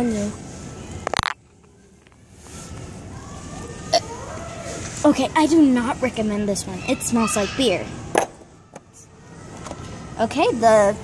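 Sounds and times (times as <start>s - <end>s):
faint distant voices: 0.0s - 11.0s
low background murmur: 0.0s - 11.0s.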